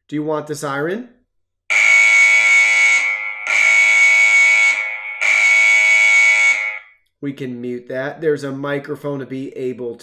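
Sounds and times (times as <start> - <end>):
shrill alarm siren: 1.7 - 7.0.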